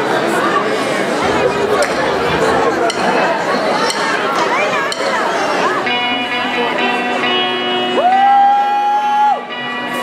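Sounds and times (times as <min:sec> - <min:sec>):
crowd: 0:00.0 - 0:10.0
rock band playing live: 0:01.2 - 0:10.0
high whoop: 0:08.0 - 0:09.5.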